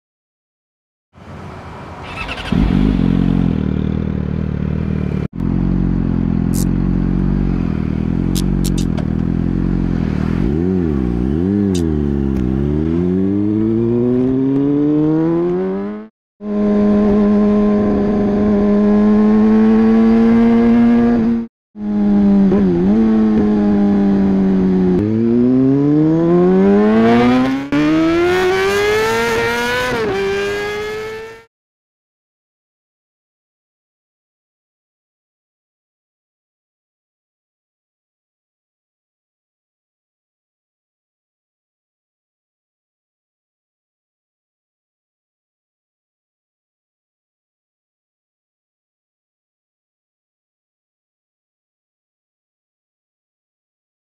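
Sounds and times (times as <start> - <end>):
motorcycle engine: 1.3 - 31.5.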